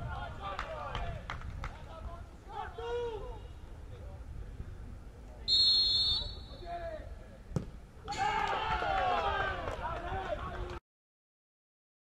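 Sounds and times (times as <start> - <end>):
voices shouting and cheering: 0.0 - 3.6, 8.0 - 10.8
football kick thud: 7.5 - 7.8.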